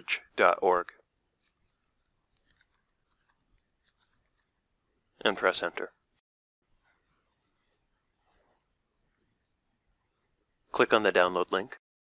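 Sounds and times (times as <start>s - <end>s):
faint keyboard keystrokes: 1.4s - 4.5s.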